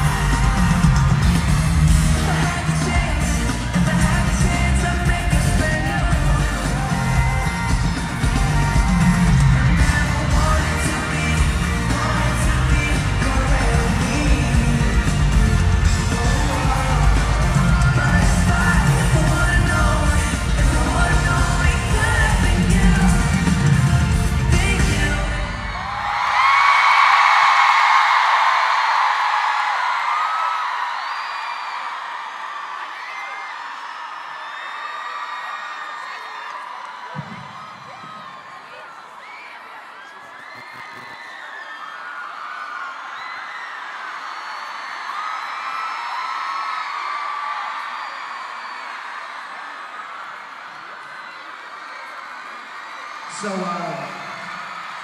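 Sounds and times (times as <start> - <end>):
live pop music with singing: 0.0 - 27.4, 35.9 - 45.7
crowd screaming: 0.0 - 55.0.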